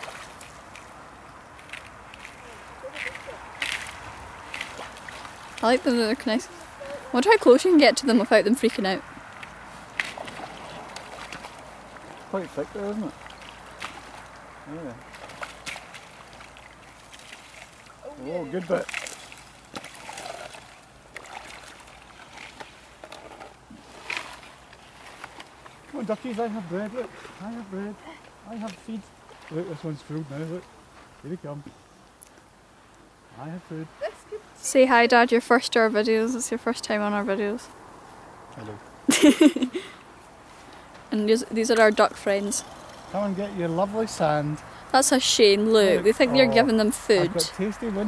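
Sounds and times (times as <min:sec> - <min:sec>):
lake ice cracking: 0:00.0 - 0:07.8, 0:08.6 - 0:27.9
boots wading through icy water: 0:00.0 - 0:31.2.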